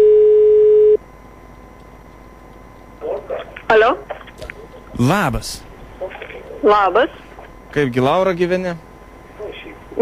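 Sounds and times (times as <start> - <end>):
telephone ringback tone: 0.0 - 1.0.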